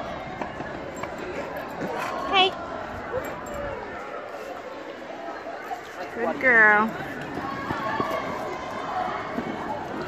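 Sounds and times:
children chattering: 0.0s - 10.0s
footsteps on paved path: 5.7s - 10.0s.

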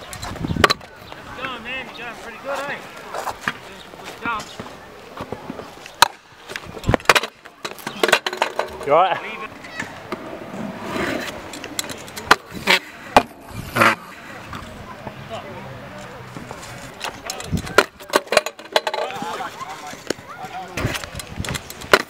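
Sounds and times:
scooter wheels rolling on concrete: 0.0s - 22.0s
scooter clacking on ground: 4.2s - 10.3s, 10.9s - 14.7s, 16.0s - 22.0s
scooter crashing and clattering: 7.0s - 9.0s.

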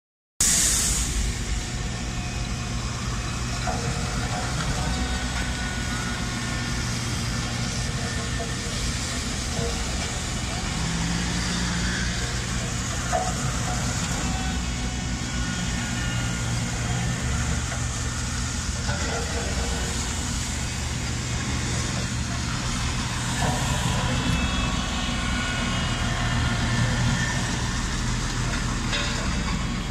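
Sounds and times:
heavy vehicle engine droning: 0.4s - 29.9s.

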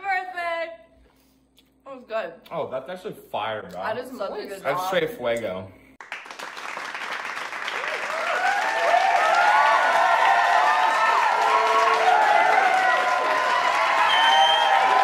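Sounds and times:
crowd clapping: 6.0s - 15.0s
crowd whooping: 7.7s - 15.0s.

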